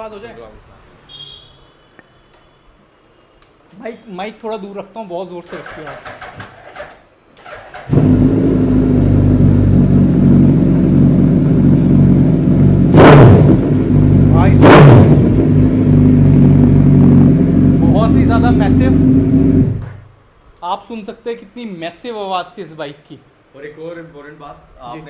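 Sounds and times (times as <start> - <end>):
motorcycle engine idling and revving: 7.5 - 20.0.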